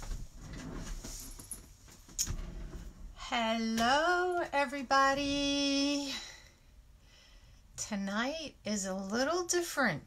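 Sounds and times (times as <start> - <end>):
faint rustling: 0.0 - 3.2.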